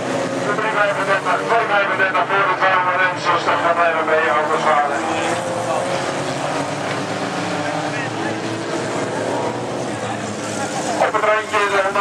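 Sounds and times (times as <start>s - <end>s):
race car engines at speed: 0.0s - 12.0s.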